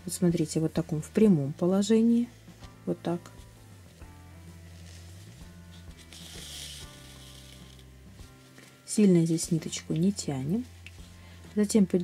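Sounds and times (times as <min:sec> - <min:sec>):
quiet background music: 0:00.0 - 0:12.0
thread rasping through fabric: 0:04.7 - 0:08.9.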